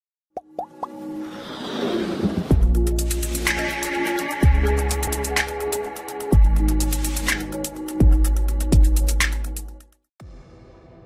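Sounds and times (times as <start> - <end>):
rising-pitched plops: 0.4 - 1.0
electronic music: 2.5 - 9.8.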